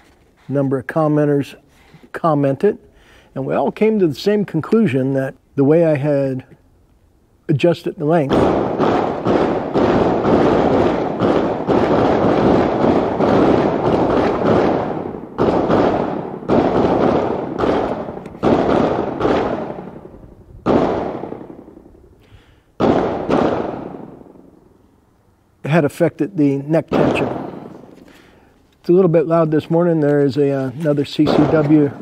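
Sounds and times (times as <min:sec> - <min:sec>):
handgun shots echoing: 0:08.3 - 0:20.1, 0:20.7 - 0:21.8, 0:22.8 - 0:24.5, 0:26.8 - 0:28.1, 0:31.2 - 0:32.0.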